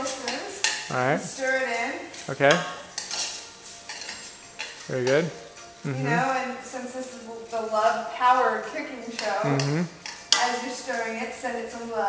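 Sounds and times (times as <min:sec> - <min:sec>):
utensil scraping metal pot: 0:03.0 - 0:05.2.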